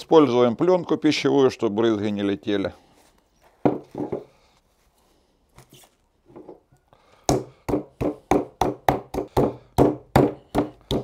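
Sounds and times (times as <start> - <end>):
meat mallet pounding: 7.3 - 11.0.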